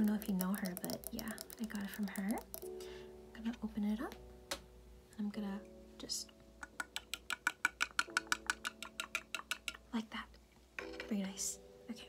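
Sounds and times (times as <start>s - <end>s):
rapid tapping on teapot: 0.0s - 2.7s, 6.6s - 9.9s.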